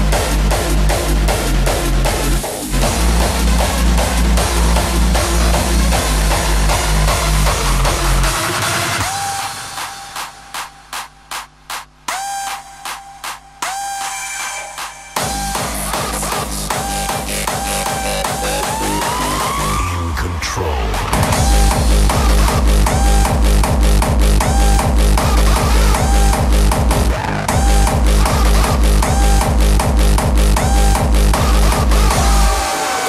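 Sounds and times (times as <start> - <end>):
hardstyle dance music: 0.0 - 33.0
pounding kick drum and bass: 0.0 - 33.0
stuttering synth stabs: 0.0 - 33.0.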